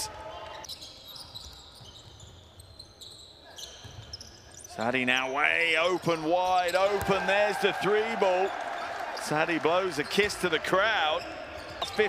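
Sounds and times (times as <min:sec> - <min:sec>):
faint high shoe squeaks: 0:00.6 - 0:04.9.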